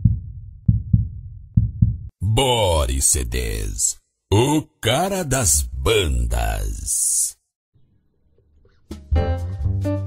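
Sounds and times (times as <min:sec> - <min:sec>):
heartbeat thumps: 0:00.0 - 0:02.1.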